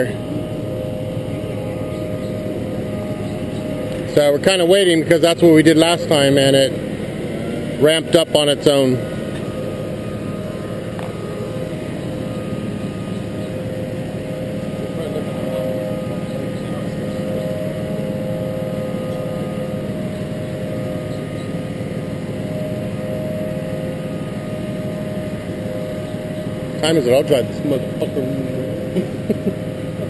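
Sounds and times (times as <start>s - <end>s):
truck engine idling: 0.0s - 30.0s.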